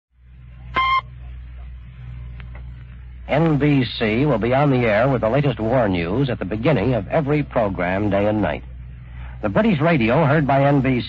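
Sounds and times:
low hum and hiss: 0.2s - 11.0s
short beep tone: 0.7s - 1.1s.

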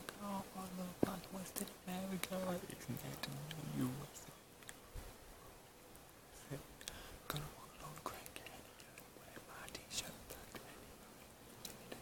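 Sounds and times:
man whispering: 6.4s - 11.2s.

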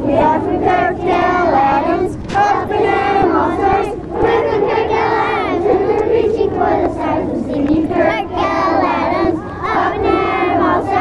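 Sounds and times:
children singing in unison: 0.0s - 11.0s.

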